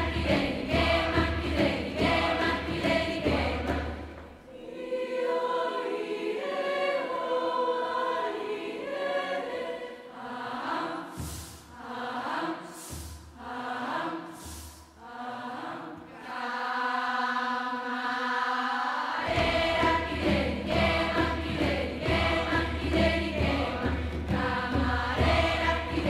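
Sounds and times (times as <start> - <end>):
low drum beats: 0.0 - 4.2, 19.3 - 26.0
youth choir singing: 0.0 - 26.0
short hissing bursts: 11.1 - 11.8, 12.7 - 13.4, 14.2 - 15.0.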